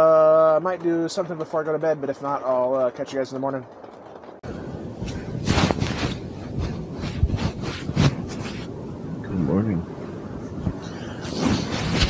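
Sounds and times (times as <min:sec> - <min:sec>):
bedding rustling: 0:05.0 - 0:08.7.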